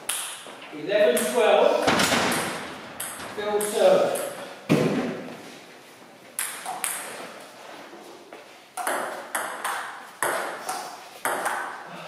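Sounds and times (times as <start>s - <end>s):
table tennis ball hits: 2.0s - 5.1s, 6.4s - 7.2s, 8.8s - 11.9s.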